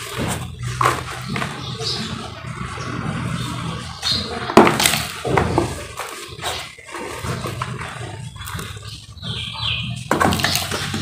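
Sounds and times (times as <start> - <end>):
hands crushing dry cement powder: 10.0 - 11.0.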